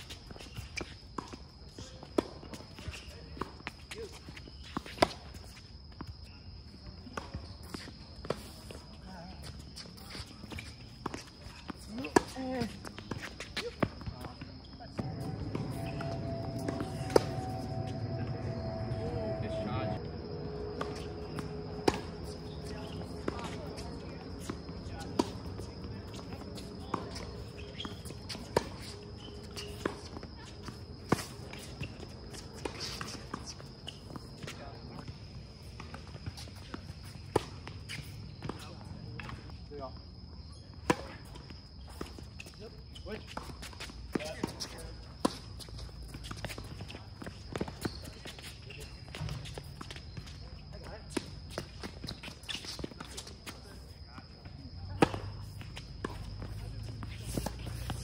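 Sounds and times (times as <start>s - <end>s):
footsteps on court: 0.0s - 58.0s
tennis balls struck and bouncing: 10.6s - 19.6s, 20.2s - 39.4s, 54.9s - 58.0s
faint high whine: 14.7s - 39.5s.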